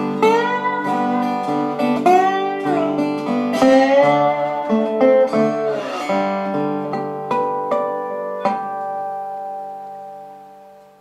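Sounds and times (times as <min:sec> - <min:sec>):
resonator guitar chord ringing: 0:00.0 - 0:11.0.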